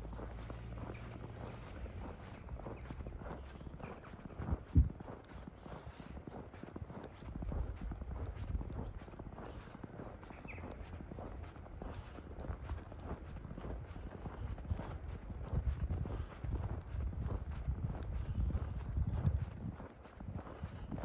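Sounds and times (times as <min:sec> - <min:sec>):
low microphone rumble: 0:00.0 - 0:06.4, 0:10.7 - 0:21.0
footsteps on packed snow: 0:00.0 - 0:21.0.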